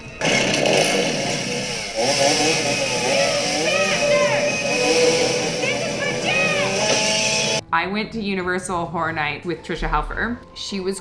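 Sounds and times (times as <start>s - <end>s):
chainsaw engine revving: 0.2s - 7.6s.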